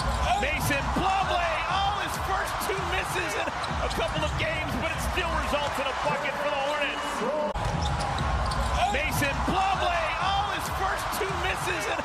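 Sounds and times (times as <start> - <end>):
basketball bouncing on court: 0.0 - 6.2, 7.6 - 11.7.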